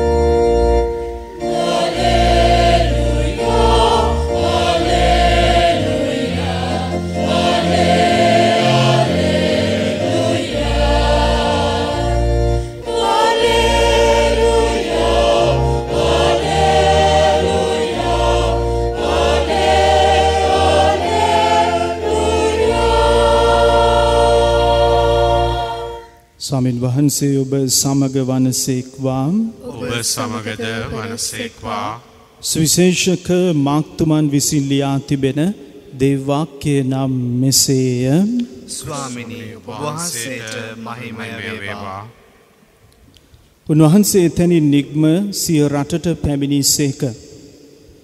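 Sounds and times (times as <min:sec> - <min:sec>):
choir singing a hymn: 0:00.0 - 0:26.3, 0:29.6 - 0:32.9, 0:38.7 - 0:42.5
sustained keyboard accompaniment: 0:00.0 - 0:26.4.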